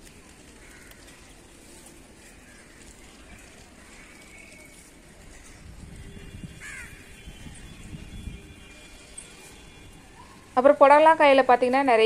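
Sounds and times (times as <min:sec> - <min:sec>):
crow cawing: 0:00.6 - 0:01.2, 0:02.4 - 0:02.9, 0:06.6 - 0:07.1.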